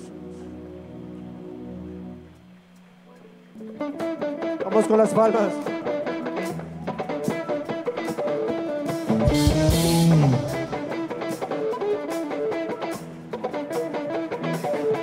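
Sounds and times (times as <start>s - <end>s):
electric guitars: 0.0s - 15.0s
drum kit beat: 5.5s - 15.0s
low bass note sliding down: 9.3s - 10.9s.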